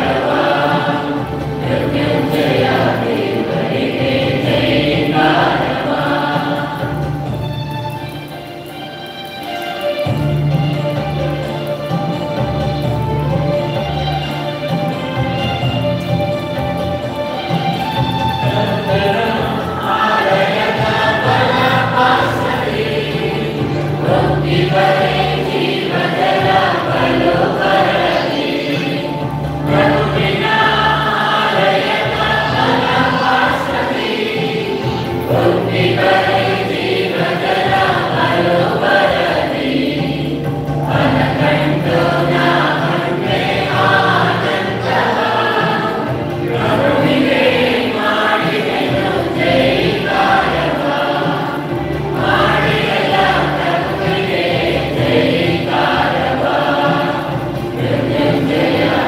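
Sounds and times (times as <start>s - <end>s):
choir singing a hymn: 0.0s - 8.4s, 10.0s - 59.0s
musical accompaniment: 0.0s - 59.0s.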